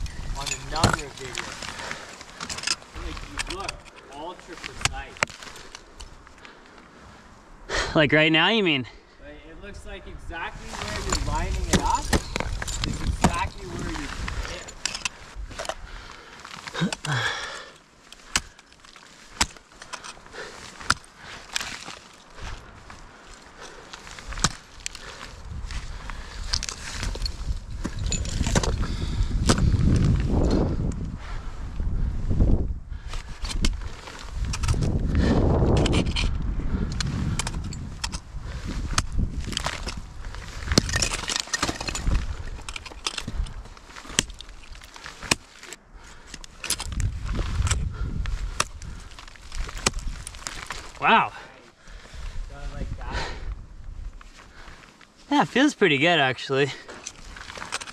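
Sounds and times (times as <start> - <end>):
ice crackling: 0.0 - 7.8, 10.2 - 31.0, 37.0 - 53.0, 54.0 - 57.9.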